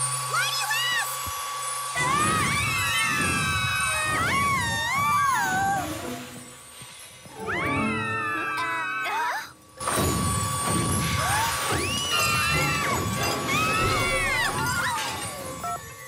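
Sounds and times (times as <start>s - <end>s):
whimsical cartoon music: 1.8s - 16.0s
held high tone: 1.9s - 9.4s.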